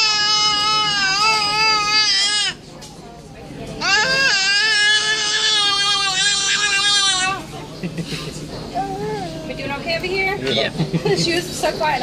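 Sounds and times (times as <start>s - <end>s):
baby vocalizing: 8.7s - 9.8s.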